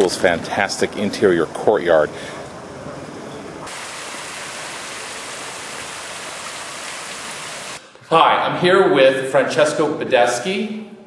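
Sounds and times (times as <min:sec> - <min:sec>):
fountain water splashing: 0:03.7 - 0:07.8.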